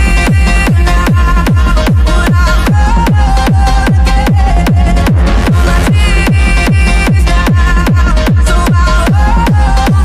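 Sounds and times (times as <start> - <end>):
techno kick drum: 0.0 - 10.0.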